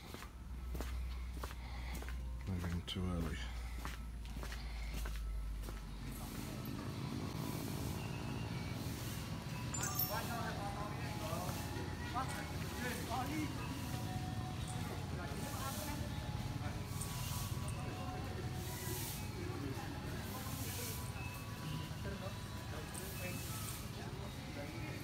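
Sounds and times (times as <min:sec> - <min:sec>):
distant indistinct voices: 0:00.0 - 0:25.0
steady low background noise: 0:00.0 - 0:25.0.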